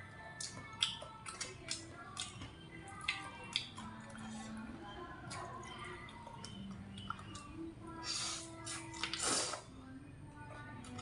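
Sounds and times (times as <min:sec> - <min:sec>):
quiet background music: 0:00.0 - 0:11.0
wet mouth sounds: 0:00.4 - 0:03.9, 0:06.1 - 0:09.7.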